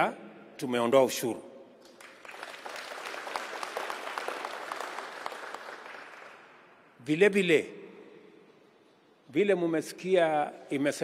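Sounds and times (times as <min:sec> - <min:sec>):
audience applauding: 0:01.8 - 0:06.7.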